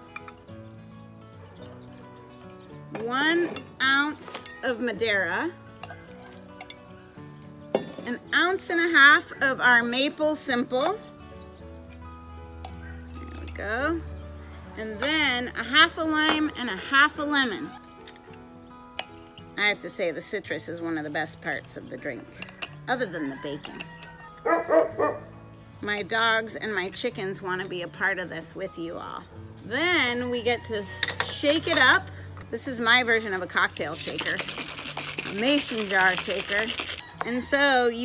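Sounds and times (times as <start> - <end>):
background music: 0.0 - 38.0
dog barking: 24.4 - 25.3
metal jigger clinking on glass jar: 34.0 - 37.2.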